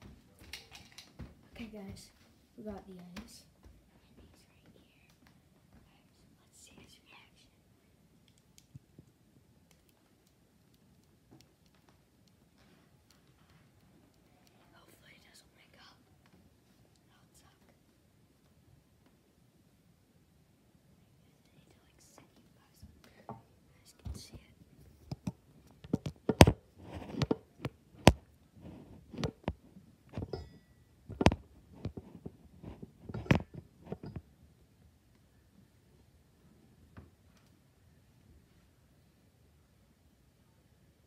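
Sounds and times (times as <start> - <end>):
person whispering: 1.6 - 5.2, 5.8 - 7.7, 14.4 - 16.1, 17.0 - 17.8, 21.0 - 24.6.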